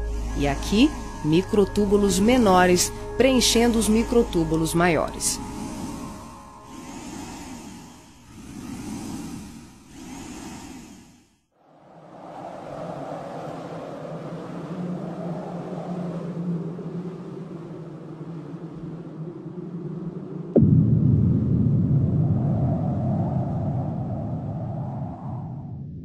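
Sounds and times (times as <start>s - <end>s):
steady rumbling drone: 0.0s - 11.2s
whooshes: 0.0s - 11.3s.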